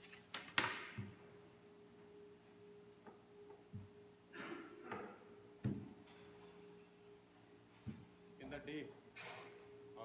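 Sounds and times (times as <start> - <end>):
steady hum: 1.0 - 10.0.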